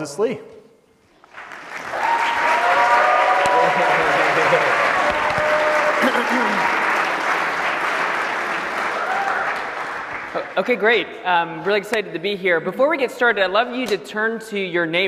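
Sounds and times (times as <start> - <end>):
audience applauding: 1.1 - 10.9.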